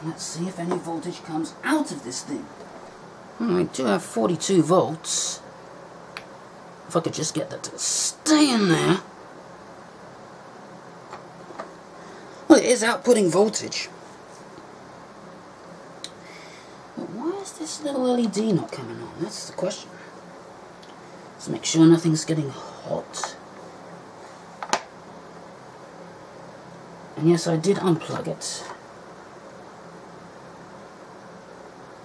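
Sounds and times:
low steady hiss: 0.0s - 32.0s.

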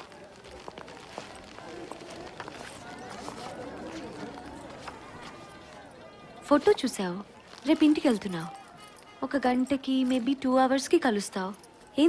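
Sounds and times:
crowd voices chattering: 0.0s - 12.0s.

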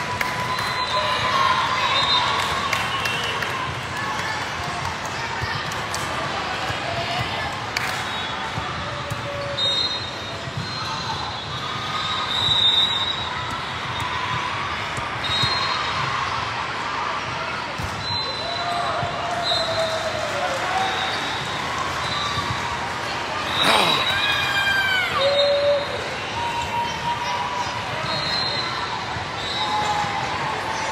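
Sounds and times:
many voices talking: 22.5s - 30.9s.

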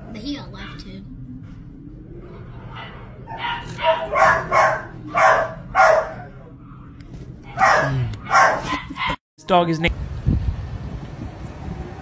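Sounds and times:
dog barking: 2.6s - 9.2s.

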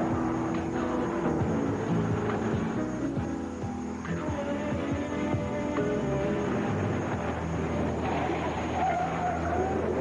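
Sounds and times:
tyres skidding on ground: 5.1s - 10.0s.

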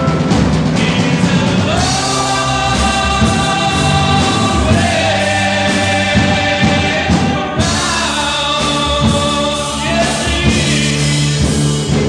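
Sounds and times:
chorus singing long notes: 0.0s - 12.0s
rock band playing: 0.0s - 12.0s.

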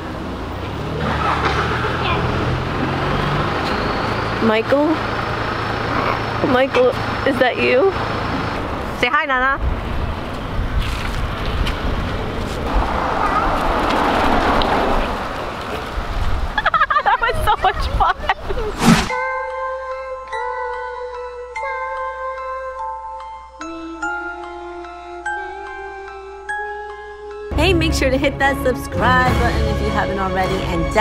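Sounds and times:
car driving past: 0.0s - 7.2s, 12.6s - 16.3s
city traffic noise: 0.0s - 19.1s, 27.5s - 31.0s
vehicle engine humming: 0.0s - 19.1s.

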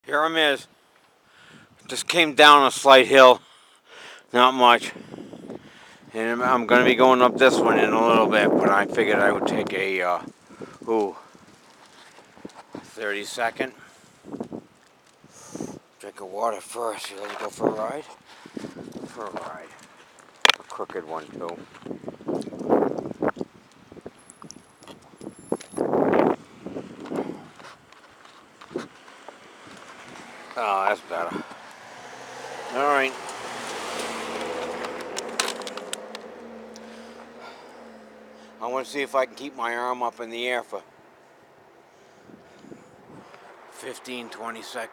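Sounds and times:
man breathing heavily: 1.2s - 1.8s, 3.4s - 4.3s, 4.9s - 6.1s, 26.8s - 27.8s, 36.7s - 38.6s
camera handling clicks and knocks: 34.8s - 36.3s.

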